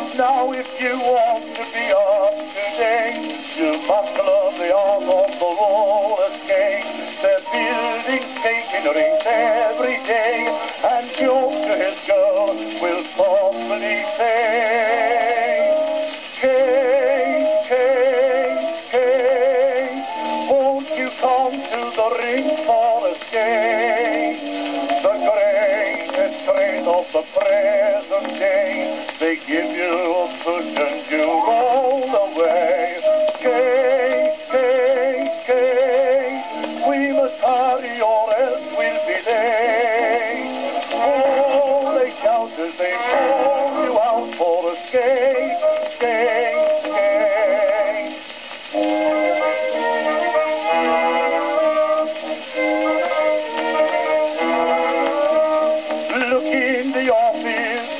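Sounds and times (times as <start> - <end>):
baritone singing: 0.0 - 57.9
small orchestra accompaniment: 0.0 - 57.9.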